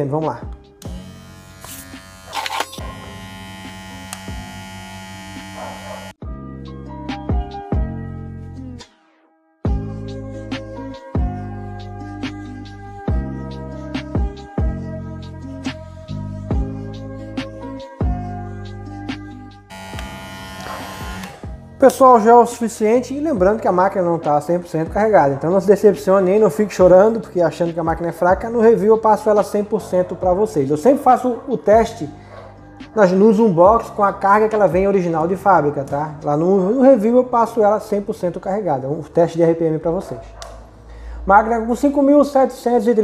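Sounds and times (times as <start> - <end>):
hair clipper motor buzzing: 0.8 - 6.2, 19.7 - 21.8.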